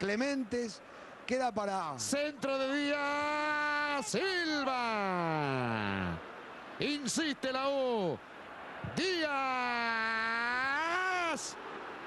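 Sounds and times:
background noise: 0.0s - 12.0s
commentator shouting: 9.0s - 11.6s.

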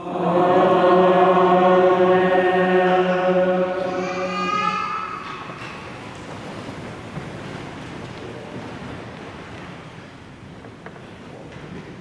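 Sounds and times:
congregation rustling and shuffling: 0.0s - 12.0s.

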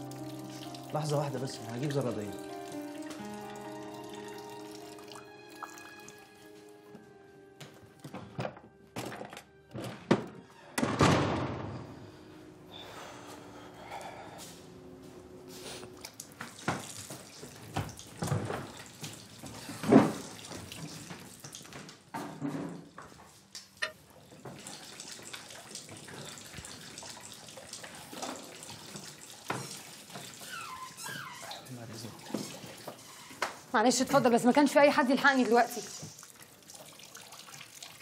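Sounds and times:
running water: 0.0s - 6.8s, 15.8s - 22.2s, 23.0s - 38.0s.

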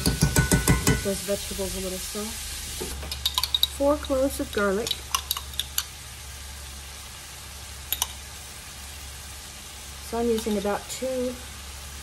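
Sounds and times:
meat and vegetables sizzling: 0.0s - 12.0s.

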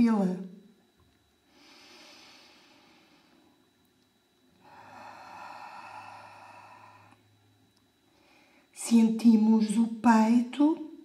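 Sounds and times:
woman breathing slowly: 1.4s - 3.8s, 4.5s - 8.8s.

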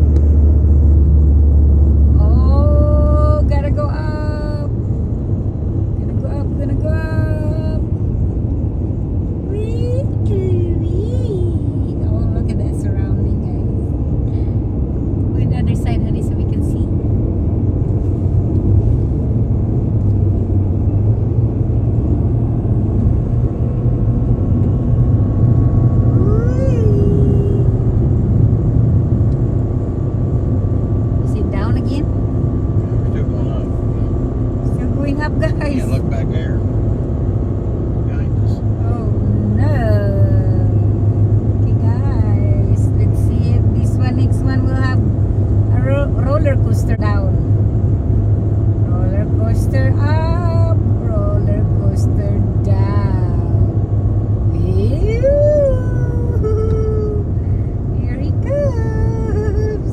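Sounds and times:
car road and engine rumble: 0.0s - 59.9s
voices: 2.2s - 4.7s, 9.5s - 13.8s, 26.2s - 27.8s, 31.3s - 32.1s, 34.7s - 36.6s, 38.1s - 40.9s, 41.7s - 45.0s, 45.7s - 47.4s, 48.9s - 53.7s, 54.5s - 57.3s, 57.9s - 59.9s.

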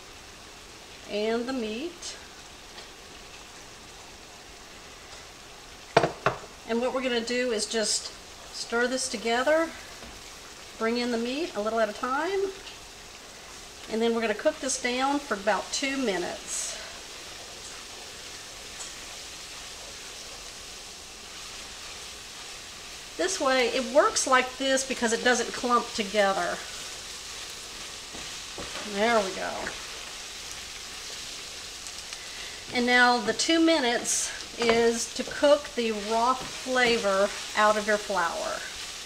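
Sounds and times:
meat sizzling in a skillet: 0.0s - 39.0s
wooden spoon knocking on pan: 6.0s - 6.5s, 34.6s - 35.0s
wooden spoon stirring: 25.5s - 33.1s, 34.0s - 39.0s.

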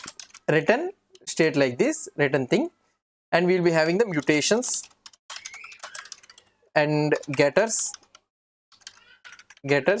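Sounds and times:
keyboard typing clicks: 0.0s - 0.5s, 3.8s - 9.6s
man's voice: 9.6s - 10.0s.

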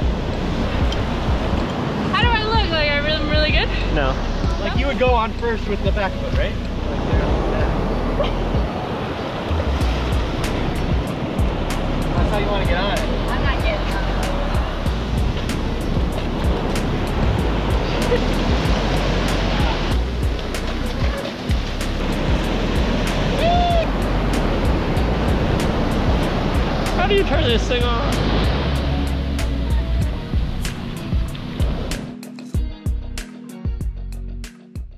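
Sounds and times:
ocean surf washing on beach: 0.0s - 32.2s
background music with steady beat: 0.0s - 34.9s
voices shouting: 23.0s - 27.3s.

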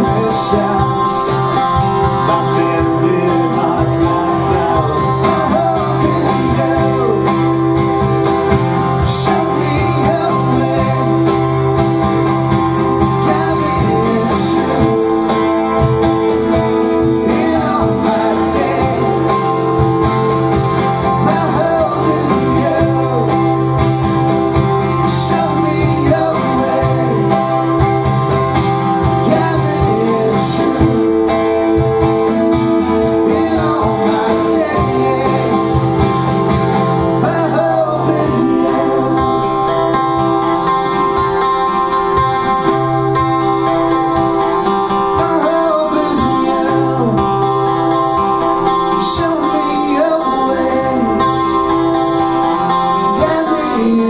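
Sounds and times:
man singing: 0.0s - 41.1s, 44.2s - 54.0s
plucked string instrument: 0.0s - 54.0s
strummed acoustic guitar: 0.0s - 54.0s.

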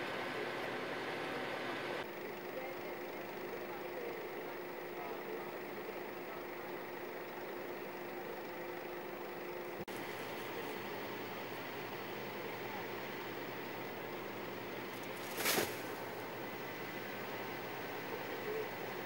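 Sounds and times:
faint voices: 1.3s - 19.0s
fire truck engine idling: 2.0s - 19.0s.

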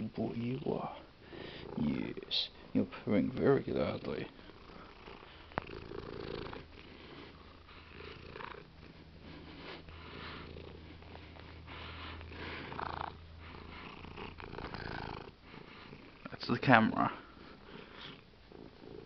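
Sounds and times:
cat purring: 0.1s - 19.0s.

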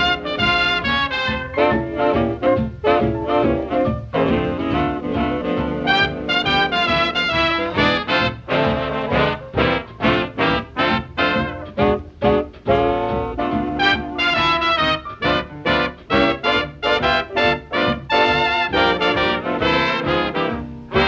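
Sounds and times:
swing band brass playing: 0.0s - 21.0s.

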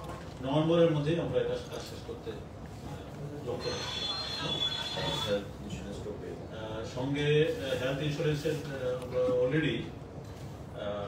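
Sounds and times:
faint voices: 2.8s - 5.8s.

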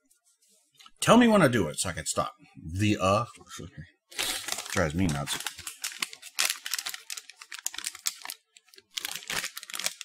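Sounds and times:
plastic wrappers crinkling: 4.1s - 10.0s.

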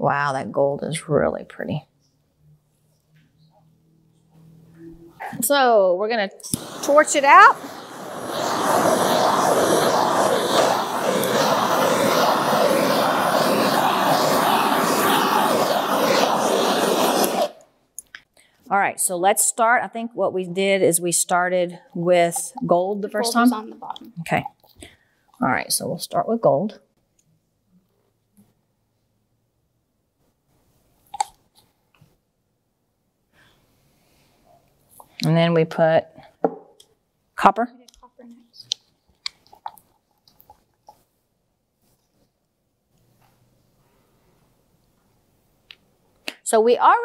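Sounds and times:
blowtorch flame hissing: 6.4s - 17.6s, 23.1s - 24.0s.

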